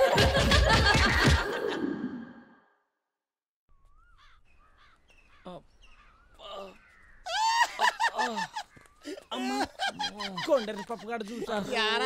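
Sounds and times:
birds calling: 0:03.7 - 0:12.0.

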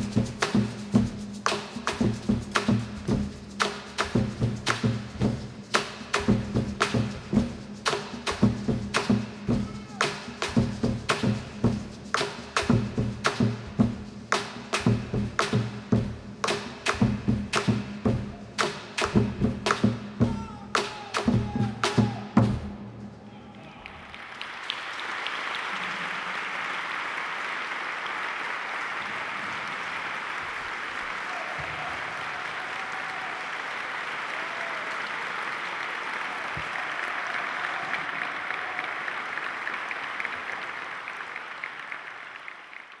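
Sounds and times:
audience applauding: 0:23.4 - 0:43.0.

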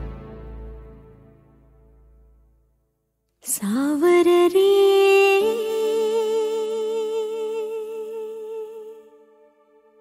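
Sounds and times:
sustained chord: 0:00.0 - 0:02.6.

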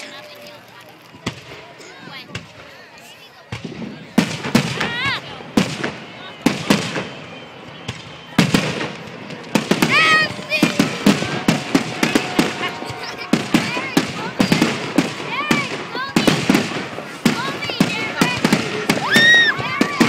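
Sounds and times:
fireworks bangs and crackles: 0:00.0 - 0:20.0.

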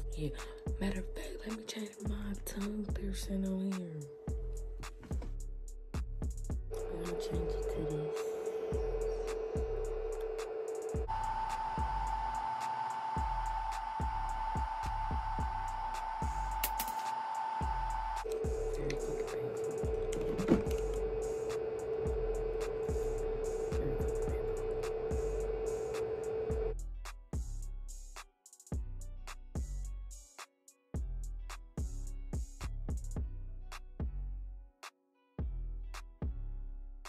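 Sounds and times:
steady drum beat: 0:07.3 - 0:11.1, 0:13.2 - 0:17.0, 0:17.6 - 0:26.7.

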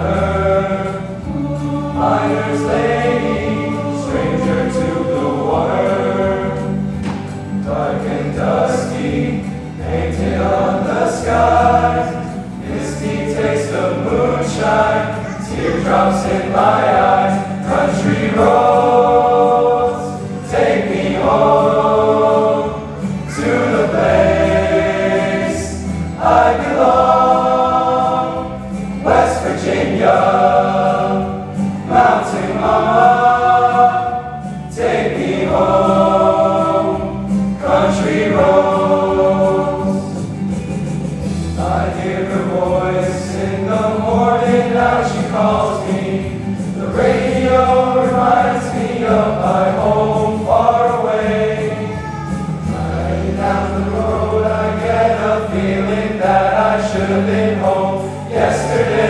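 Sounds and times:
male chorus singing in harmony: 0:00.0 - 0:59.0.

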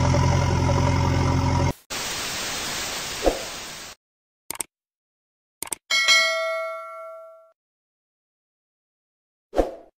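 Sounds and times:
notification bell ding: 0:05.9 - 0:07.6.

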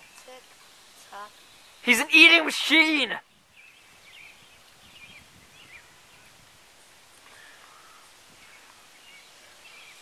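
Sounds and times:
distant birds chirping: 0:00.0 - 0:10.0.

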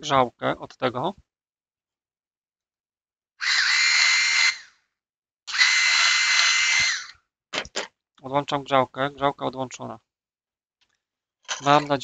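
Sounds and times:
electric screwdriver running: 0:03.4 - 0:04.7, 0:05.5 - 0:07.1.

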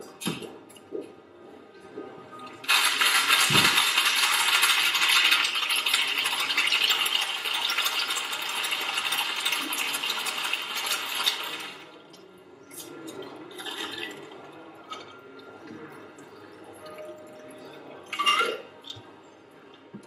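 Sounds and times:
ice rattling in cocktail shaker: 0:02.7 - 0:11.9.

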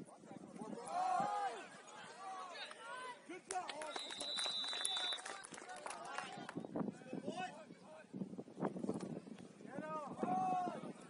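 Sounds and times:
people shouting and talking: 0:00.0 - 0:08.3, 0:09.6 - 0:11.0
referee's whistle blast: 0:03.9 - 0:05.2.

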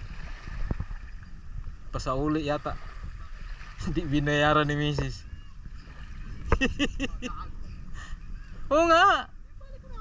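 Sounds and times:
low steady wind: 0:00.0 - 0:10.0
shallow sea water: 0:00.0 - 0:10.0.

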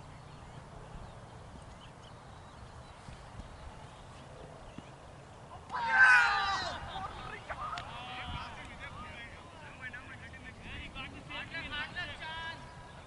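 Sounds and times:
low outdoor rumble: 0:00.0 - 0:13.0
players shouting: 0:05.5 - 0:13.0.

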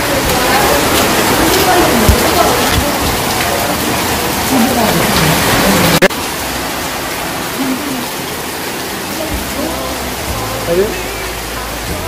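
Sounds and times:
faint indistinct voices: 0:00.0 - 0:06.1, 0:07.4 - 0:12.0
rain hissing: 0:00.0 - 0:12.0.

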